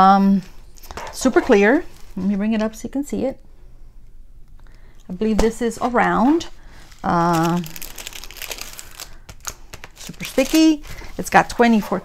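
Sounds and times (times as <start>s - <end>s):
plastic film crinkling: 5.8s - 11.9s.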